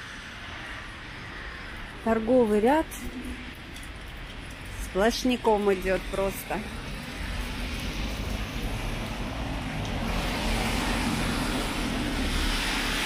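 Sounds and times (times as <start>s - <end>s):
tyres hissing on wet road: 0.0s - 2.0s, 6.0s - 13.0s.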